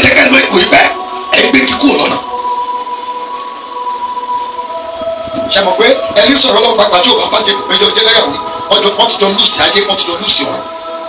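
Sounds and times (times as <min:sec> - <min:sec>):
droning held tones: 0:00.0 - 0:11.0.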